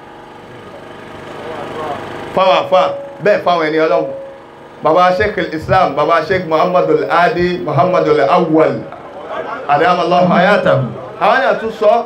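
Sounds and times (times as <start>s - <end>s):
steady engine-like hum: 0.0s - 11.8s.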